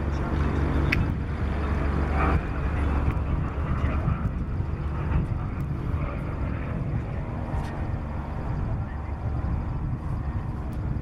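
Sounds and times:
propeller aircraft flying overhead: 0.0s - 11.0s.

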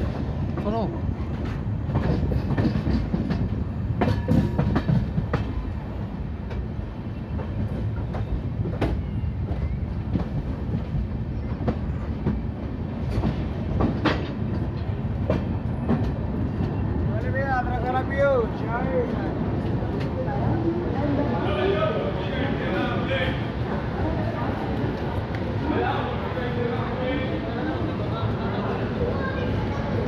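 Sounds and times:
train coaches rumbling: 0.0s - 30.0s.

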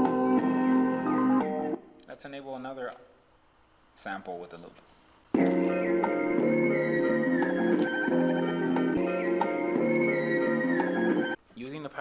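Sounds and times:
looped music sample: 5.4s - 11.4s.

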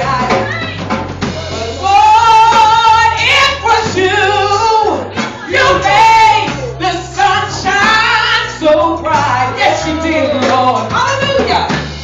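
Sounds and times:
choir singing gospel: 1.2s - 11.7s
woman singing with vibrato: 1.6s - 11.7s.

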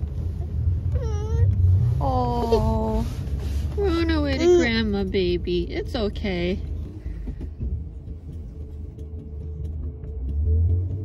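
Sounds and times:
low rumble inside car cabin: 0.0s - 11.0s.

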